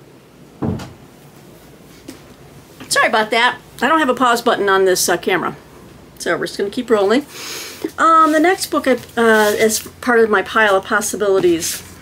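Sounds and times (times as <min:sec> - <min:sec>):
door thumping shut: 0:00.6 - 0:01.0.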